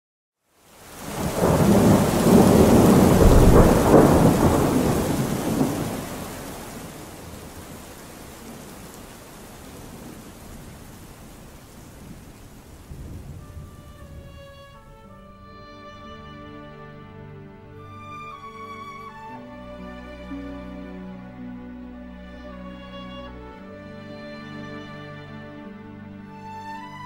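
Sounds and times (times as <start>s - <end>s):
steady rain: 0.4s - 27.0s
roll of thunder: 1.0s - 9.0s, 9.7s - 15.0s.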